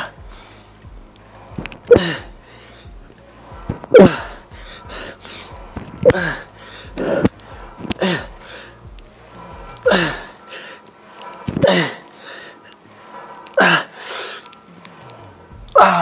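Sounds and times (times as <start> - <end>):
faint background music: 0.0 - 16.0
man grunting with effort: 3.9 - 4.4, 6.0 - 7.3, 9.8 - 10.3, 15.7 - 16.0.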